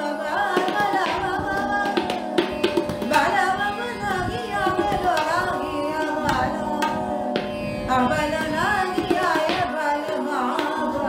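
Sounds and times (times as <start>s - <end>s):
woman singing: 0.0s - 11.0s
tabla strokes: 0.1s - 11.0s
steady drone: 1.1s - 9.2s.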